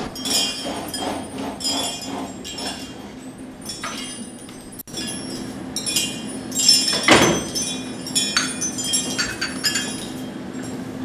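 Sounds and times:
dishes clattering: 0.0 - 10.8
glass or china clinking: 0.0 - 10.8
steady low hum: 0.0 - 11.0.

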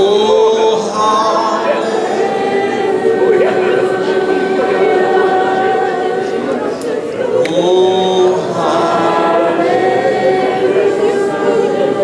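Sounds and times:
congregation singing: 0.0 - 12.0.

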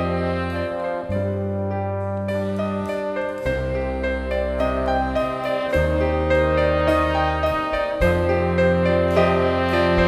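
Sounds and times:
rock band playing: 2.4 - 10.0.

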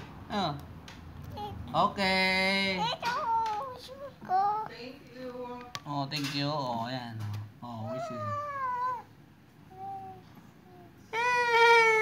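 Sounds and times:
child's drawn-out vocal call: 7.9 - 9.1, 9.7 - 12.0.

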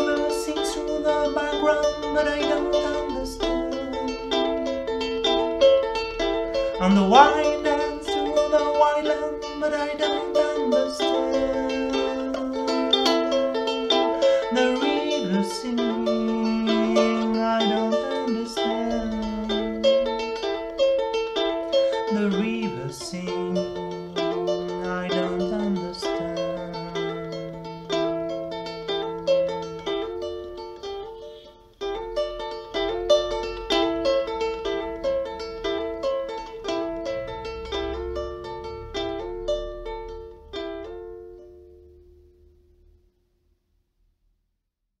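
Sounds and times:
fingerpicked ukulele: 0.0 - 43.0.

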